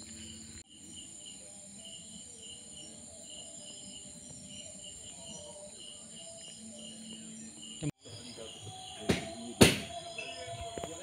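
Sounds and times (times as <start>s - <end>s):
crickets trilling and chirping: 0.0s - 11.0s.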